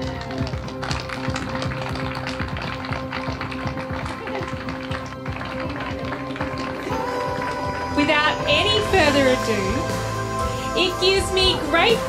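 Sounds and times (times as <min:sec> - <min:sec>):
crowd applauding: 0:00.0 - 0:08.9
background music: 0:00.0 - 0:12.0.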